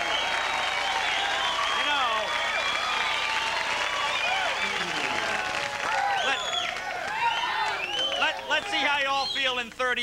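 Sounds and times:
shouts and whoops: 0.0 - 9.1
audience applauding: 0.0 - 9.5.

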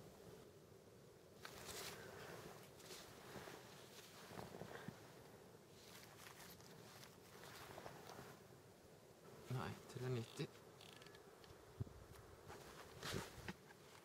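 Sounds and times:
rustling of rifle sling: 1.4 - 8.4, 9.3 - 14.0.

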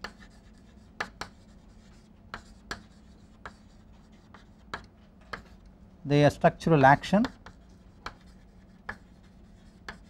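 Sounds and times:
chalk tapping and scratching: 0.0 - 5.6, 7.2 - 10.0
faint steady hum: 0.0 - 10.0.

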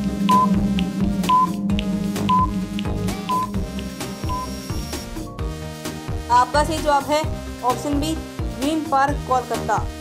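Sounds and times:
background music: 0.0 - 10.0
short high timer beeps: 0.2 - 5.0.

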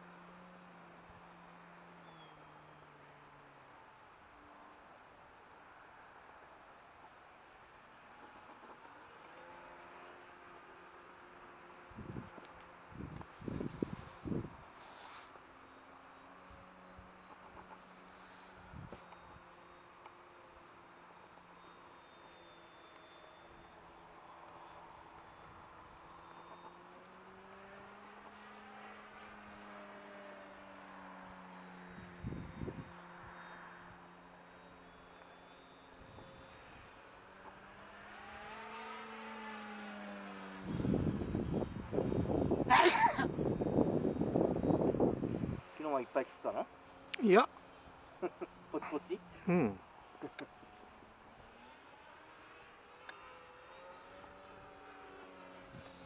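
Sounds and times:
model airplane motor hum: 15.3 - 30.2, 31.0 - 47.0, 52.5 - 56.0.

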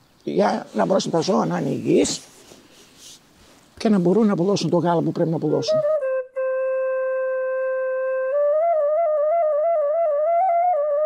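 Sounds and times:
wind instrument long note: 5.4 - 11.0.

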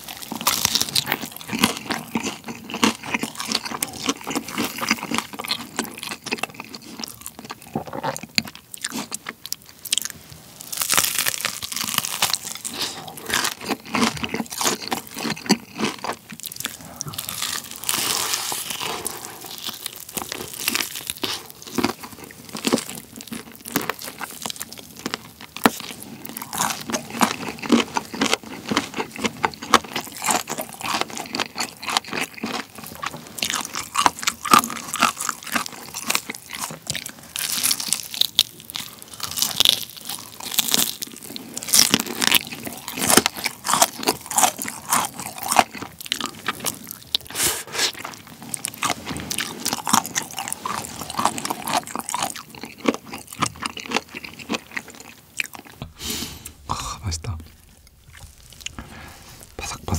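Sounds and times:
chewing: 0.0 - 59.9
crispy chicken crunching: 0.0 - 59.9.

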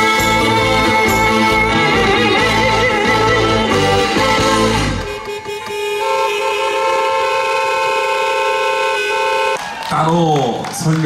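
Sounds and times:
live band holding chord: 0.0 - 9.6
man speaking into a microphone: 9.9 - 11.0.

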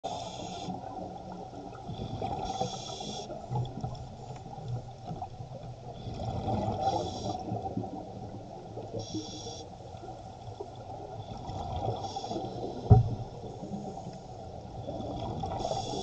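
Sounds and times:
scuba regulator inhalation hiss: 0.1 - 0.8, 2.4 - 3.4, 6.8 - 7.6, 8.9 - 9.8, 12.0 - 12.9, 15.5 - 16.0.

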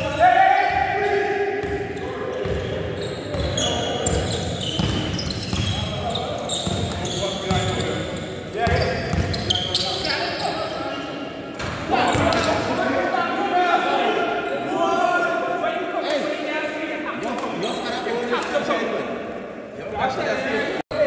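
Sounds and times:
basketball bouncing on hardwood floor: 4.8 - 5.7.

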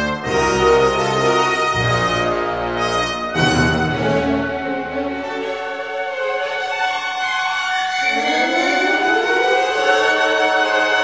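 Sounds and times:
symphony orchestra playing: 0.0 - 11.0.

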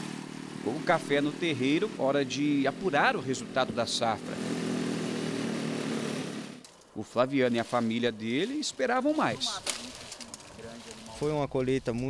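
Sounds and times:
small engine running: 0.0 - 6.8.

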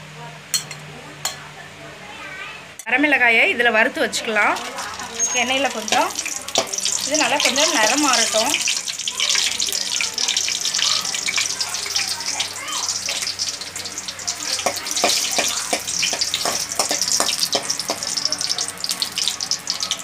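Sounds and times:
spoon clicking and scraping pan: 0.6 - 1.4, 4.6 - 9.5, 13.0 - 13.4, 14.5 - 18.6
chillies sizzling in hot oil: 3.4 - 20.0.

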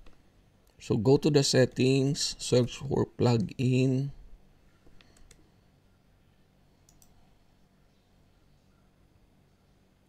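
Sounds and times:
faint computer mouse clicks: 4.9 - 5.4, 6.8 - 7.2.

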